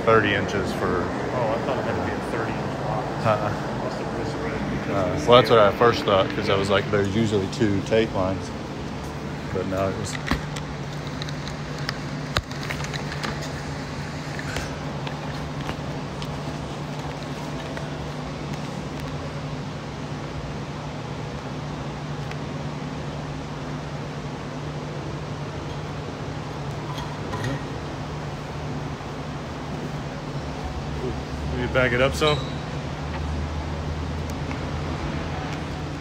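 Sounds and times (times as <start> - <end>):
ventilation hum: 0.0 - 36.0.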